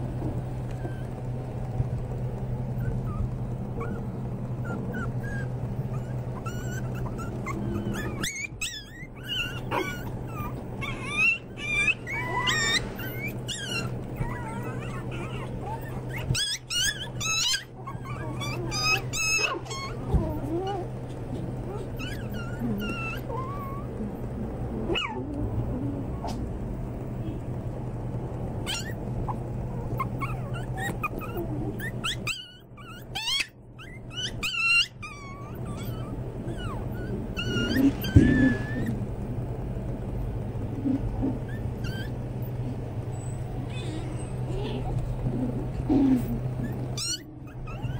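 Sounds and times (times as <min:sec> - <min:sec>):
steady low hum: 0:00.0 - 0:47.9
puppies whining and yipping: 0:00.1 - 0:01.3, 0:02.6 - 0:26.4, 0:28.6 - 0:39.1, 0:40.1 - 0:47.9.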